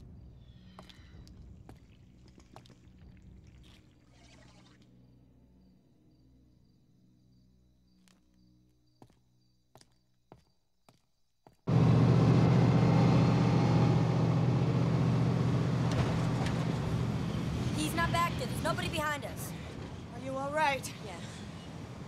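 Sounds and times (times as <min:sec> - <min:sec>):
car engine and road noise: 0:11.7 - 0:22.0.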